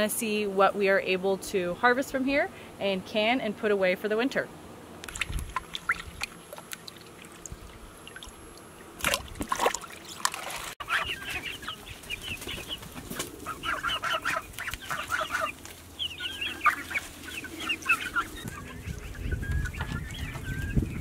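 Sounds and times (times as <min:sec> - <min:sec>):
young goose wavering call: 0:10.8 - 0:11.9, 0:13.4 - 0:20.8
chickens chirping: 0:10.8 - 0:21.0.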